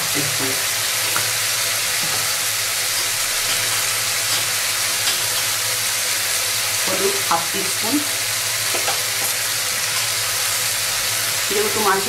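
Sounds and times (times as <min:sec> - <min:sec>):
onions sizzling in hot oil: 0:00.0 - 0:12.0.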